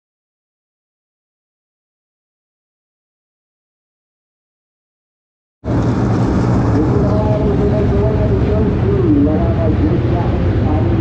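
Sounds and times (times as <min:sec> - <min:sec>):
race car engines rumbling: 0:05.7 - 0:11.0.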